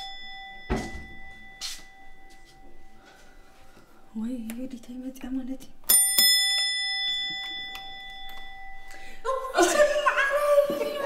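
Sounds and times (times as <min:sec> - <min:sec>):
doorbell chime: 0:00.0 - 0:03.8, 0:05.9 - 0:10.0.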